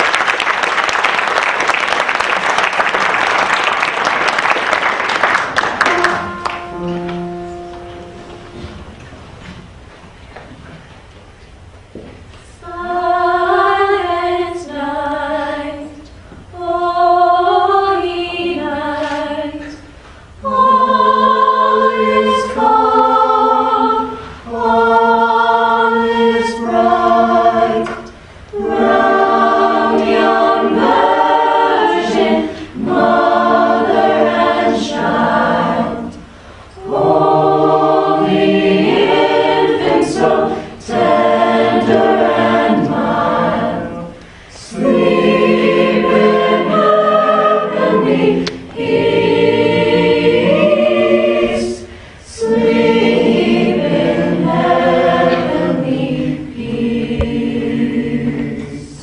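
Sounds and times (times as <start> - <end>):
a cappella group singing in harmony: 12.4 - 59.0.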